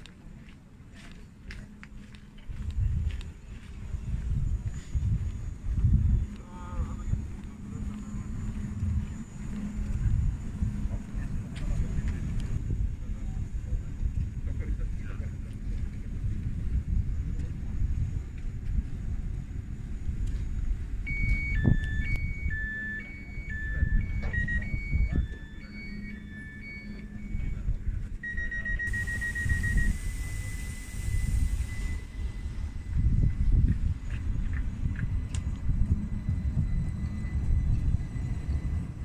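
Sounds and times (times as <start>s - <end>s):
low rumble: 1.4s - 39.0s
alternating high and low beeps: 5.0s - 13.8s, 20.6s - 39.0s
held electronic tone: 21.0s - 33.6s
fast-pulsed beep: 21.1s - 32.5s
hiss of air: 28.8s - 33.0s.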